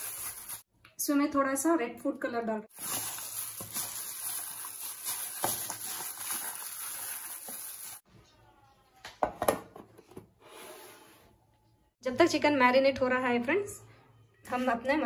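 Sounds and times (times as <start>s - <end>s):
plastic glove crinkling and squelching: 0.0s - 0.7s, 2.7s - 8.0s.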